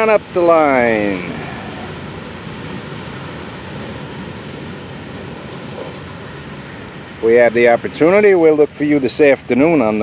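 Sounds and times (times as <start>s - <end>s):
freight train wheels rumbling on rail: 0.0s - 7.9s.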